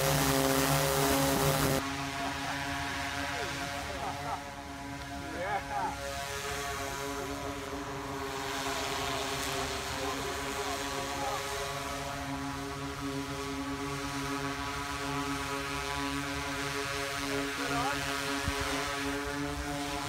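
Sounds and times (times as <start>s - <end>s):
drone propeller hum: 0.0s - 20.0s.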